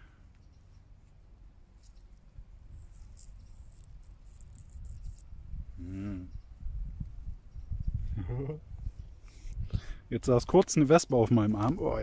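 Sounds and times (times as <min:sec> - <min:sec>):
wind rumble on microphone: 0:02.4 - 0:10.6
high-pitched insect chirps: 0:02.7 - 0:06.2.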